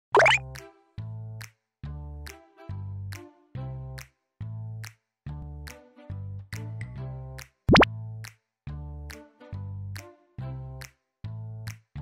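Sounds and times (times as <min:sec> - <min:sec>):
pop sound effect sweeping upward: 0:00.2 - 0:00.4
background music: 0:00.2 - 0:12.0.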